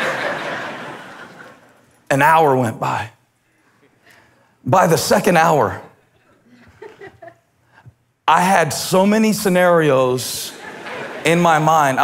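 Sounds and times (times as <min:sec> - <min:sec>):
congregation laughing: 0:00.0 - 0:02.0, 0:06.0 - 0:07.8, 0:10.3 - 0:12.0.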